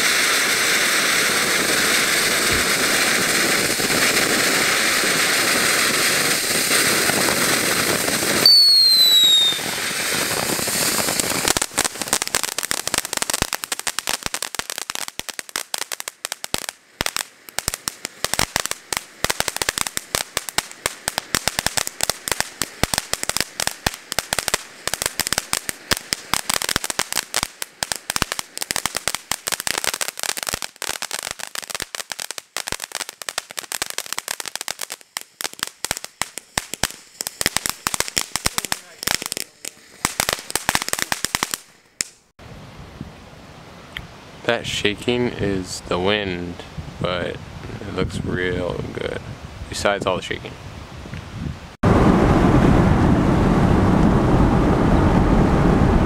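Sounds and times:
fireworks crackling and popping: 0.0 - 42.4, 44.0 - 56.0
loud hiss: 0.0 - 42.6
falling whistle: 8.4 - 9.8.

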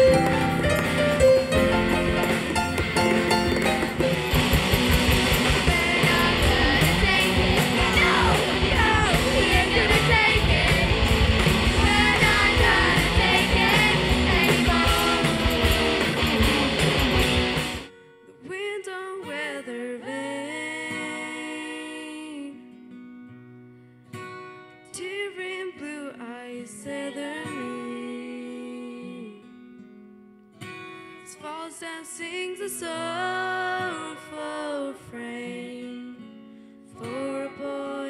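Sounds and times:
rock band playing: 0.0 - 17.9
ringing guitar chords: 0.0 - 18.2
person singing: 5.5 - 16.4.

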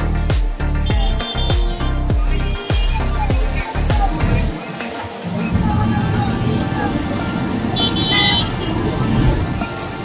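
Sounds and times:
music: 0.0 - 10.0
car horn toot: 0.8 - 1.8, 7.8 - 8.8.

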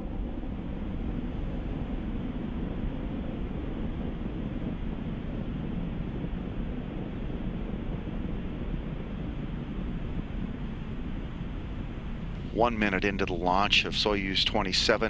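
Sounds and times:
rocket engine rumble: 0.0 - 15.0.

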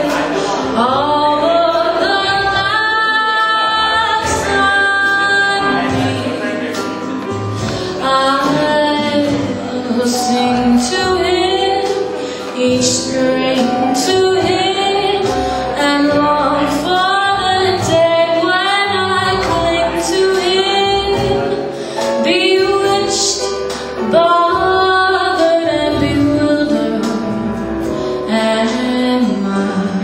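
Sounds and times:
backing track: 0.0 - 30.0
woman singing into a microphone: 0.0 - 30.0.

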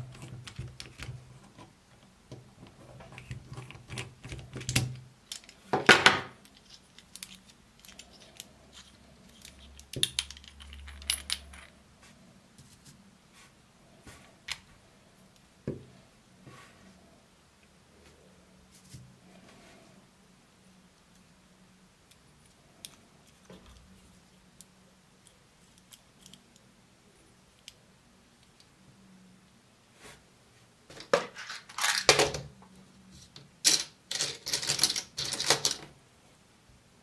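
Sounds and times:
metal lens handling noise: 6.4 - 11.8, 31.0 - 32.4
small metal objects clinking: 6.5 - 11.8.

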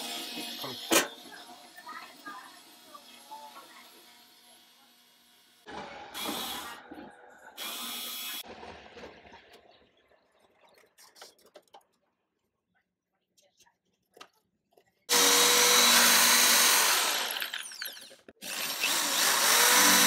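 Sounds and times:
cordless screwdriver running: 15.1 - 17.5, 18.4 - 20.0.

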